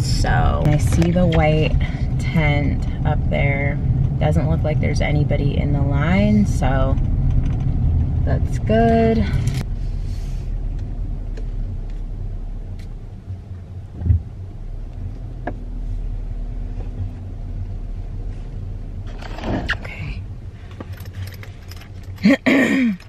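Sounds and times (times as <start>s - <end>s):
car engine and road rumble: 0.0s - 23.0s.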